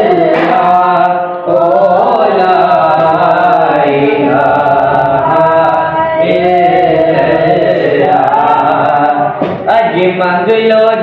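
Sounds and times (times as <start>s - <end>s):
man and boys chanting: 0.0s - 11.0s.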